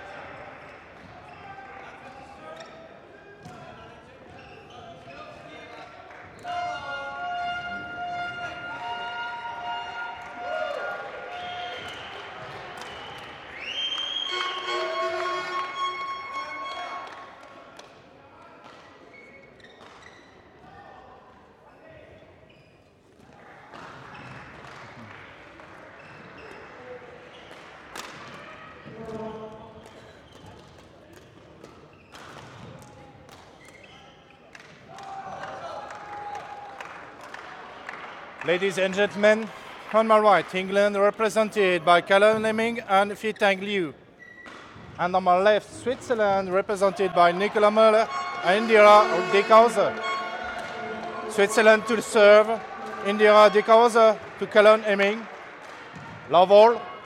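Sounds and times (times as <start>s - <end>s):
music: 14.1s - 17.3s, 47.4s - 53.8s
murmur of voices: 45.2s - 57.0s.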